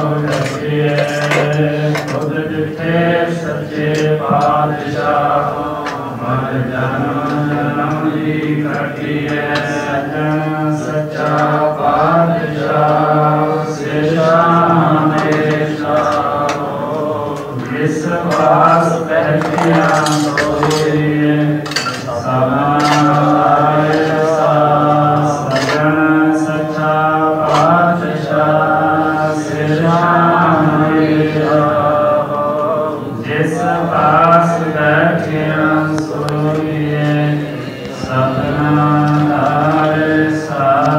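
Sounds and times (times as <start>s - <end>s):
man chanting: 0.0s - 40.9s.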